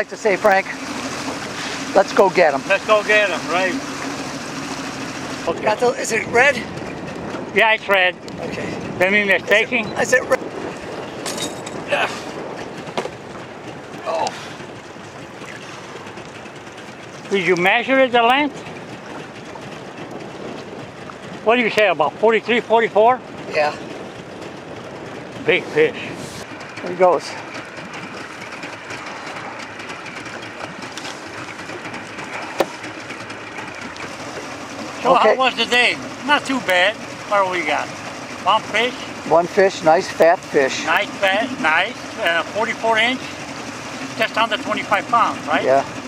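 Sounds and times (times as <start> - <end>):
boat motor running: 0.0 - 46.0
hull slapping on waves: 0.0 - 46.0
water noise: 0.0 - 46.0
wind: 0.0 - 46.0
wind noise: 5.5 - 13.9.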